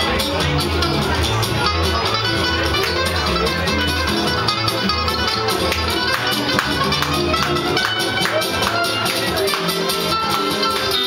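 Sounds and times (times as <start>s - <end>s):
plucked double bass: 0.0s - 11.0s
strummed acoustic guitar: 0.0s - 11.0s.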